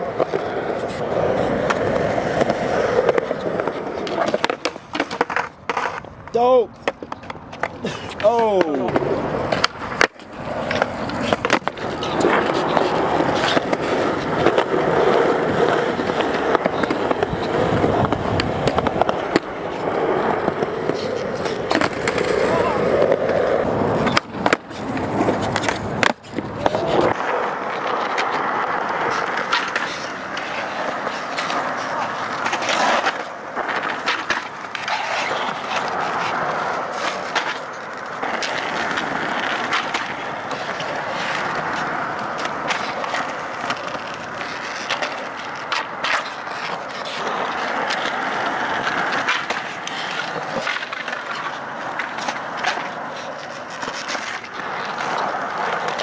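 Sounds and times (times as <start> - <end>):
skateboard popping and landing: 0.0 - 56.0
skateboard wheels rolling on concrete: 0.0 - 56.0.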